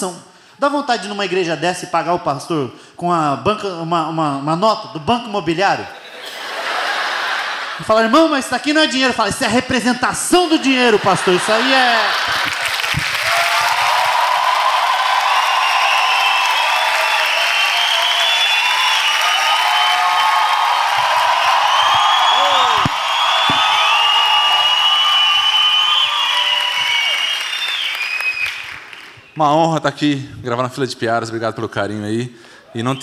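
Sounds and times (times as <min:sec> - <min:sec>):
audience applauding: 0:10.5 - 0:29.2
cheers and whoops: 0:11.7 - 0:28.8.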